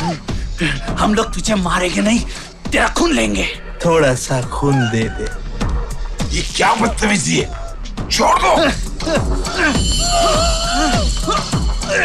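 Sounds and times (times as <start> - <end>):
dramatic background music: 0.0 - 12.0
vocal cries sweeping in pitch: 9.0 - 12.0.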